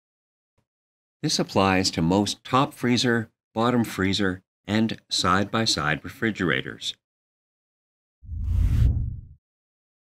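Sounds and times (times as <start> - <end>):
deep whoosh: 8.3 - 9.4.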